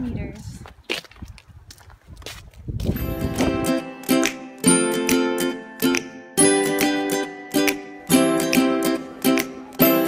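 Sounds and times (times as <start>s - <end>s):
footsteps crunching on snow: 0.4s - 3.6s.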